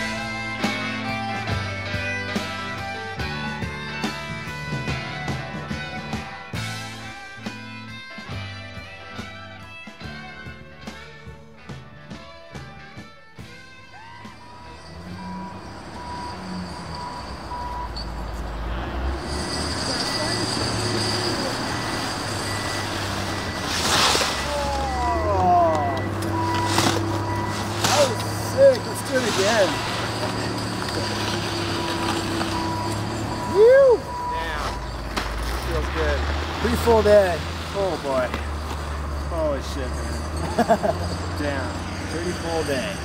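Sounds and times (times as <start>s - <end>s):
people shouting: 13.9s - 14.8s, 24.4s - 26.2s, 33.4s - 34.2s
reversing alarm beeps: 13.9s - 18.5s, 19.1s - 43.0s
heavy vehicle engine running: 14.0s - 43.0s.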